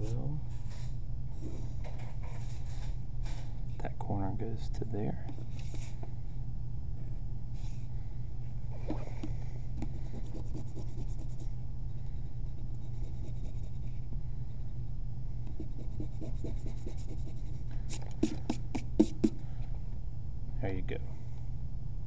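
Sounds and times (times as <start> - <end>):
eraser rubbing on paper: 9.8 - 11.5, 12.8 - 13.9, 15.6 - 19.4.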